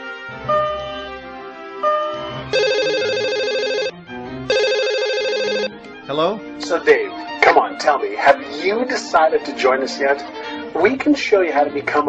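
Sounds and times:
background music: 0:00.0 - 0:12.0
mobile phone ringing: 0:00.5 - 0:01.1, 0:01.8 - 0:05.8.

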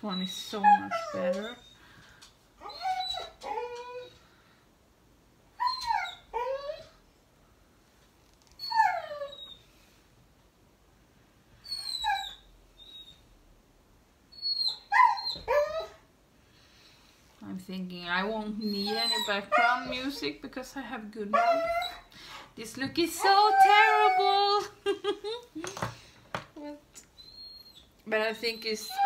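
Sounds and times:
dog whining: 0:00.1 - 0:01.8, 0:02.6 - 0:04.2, 0:05.5 - 0:07.0, 0:08.6 - 0:09.7, 0:11.6 - 0:13.3, 0:14.3 - 0:16.0, 0:18.6 - 0:20.4, 0:21.3 - 0:22.1, 0:23.1 - 0:24.9, 0:27.0 - 0:29.0.

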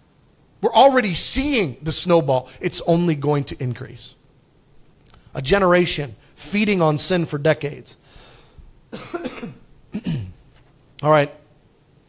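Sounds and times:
man coughing: 0:08.9 - 0:10.4.

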